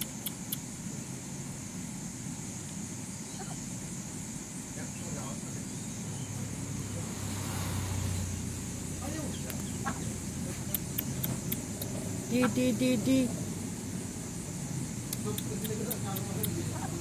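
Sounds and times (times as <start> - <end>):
road traffic rumble: 0.0 - 17.0
vehicle passing: 6.0 - 17.0.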